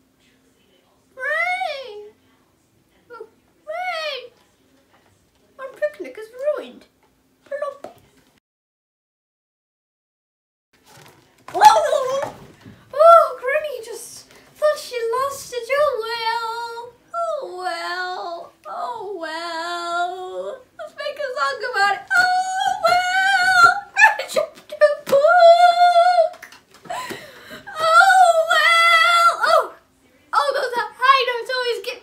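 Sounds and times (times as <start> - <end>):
girl singing wordless held notes: 11.6 - 27.1.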